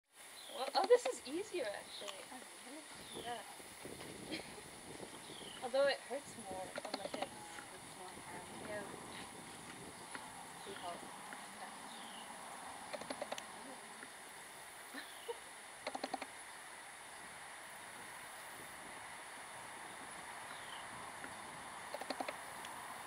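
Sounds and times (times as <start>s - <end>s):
faint outdoor ambience: 0.1s - 23.0s.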